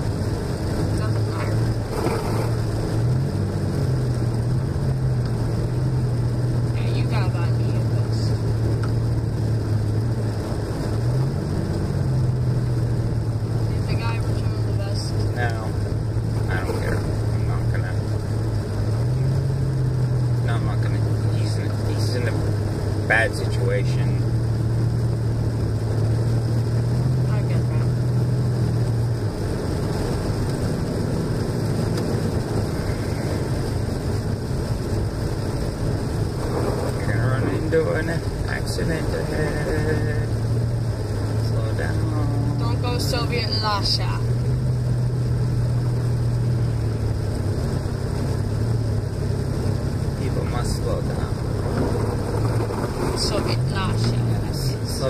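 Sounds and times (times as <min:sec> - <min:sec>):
car engine drone: 0:00.0 - 0:55.0
tyres on snow: 0:01.0 - 0:03.2, 0:49.2 - 0:55.0.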